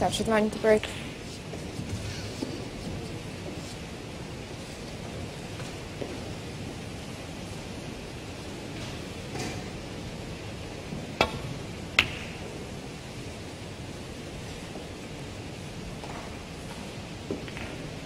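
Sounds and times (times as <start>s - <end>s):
snooker balls cracking together: 11.2s - 12.5s, 17.3s - 18.0s
cue striking ball: 11.2s - 12.6s, 17.4s - 18.0s.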